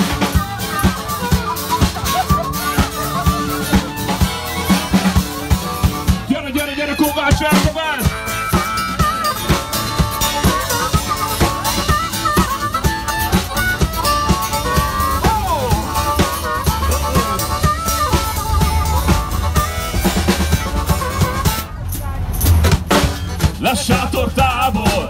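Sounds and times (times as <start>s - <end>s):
harmonica melody: 0.0s - 22.2s
steady drum beat: 0.0s - 25.0s.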